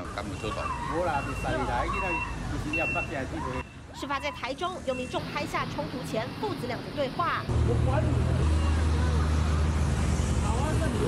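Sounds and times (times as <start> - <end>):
man and boy arguing: 0.0 - 4.6
traffic rumble: 0.0 - 11.0.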